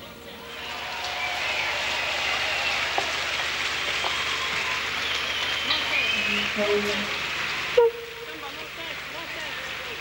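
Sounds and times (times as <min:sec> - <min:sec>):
audience clapping: 0:00.5 - 0:07.8, 0:08.4 - 0:10.0
faint whistles: 0:03.9 - 0:06.8.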